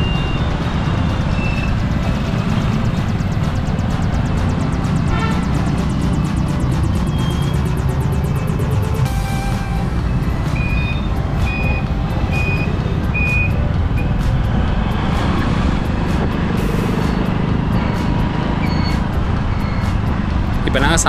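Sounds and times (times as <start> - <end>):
motorcycle engine: 0.0 - 21.0
wind rumble: 0.0 - 21.0
short high beeps: 8.6 - 14.2.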